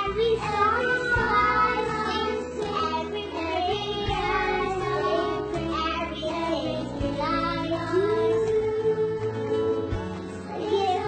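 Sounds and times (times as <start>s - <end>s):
instrumental backing: 0.0s - 11.0s.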